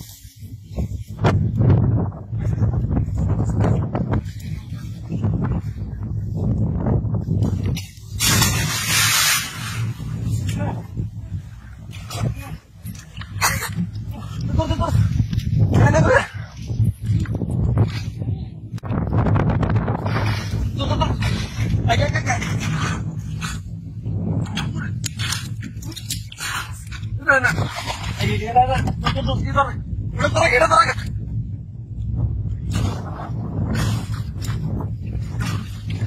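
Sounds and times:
water splashing: 7.8s - 10.6s, 24.5s - 29.3s
large splash into water: 8.2s - 9.8s.

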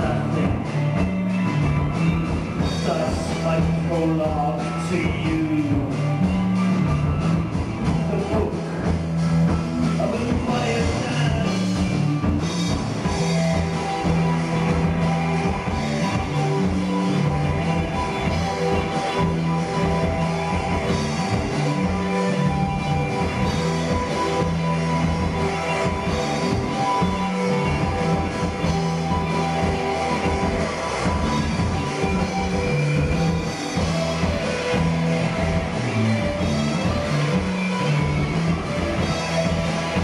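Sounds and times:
bass guitar: 0.0s - 40.0s
drums: 0.0s - 40.0s
held electric guitar notes: 0.0s - 40.0s
rock band playing live: 0.0s - 40.0s.

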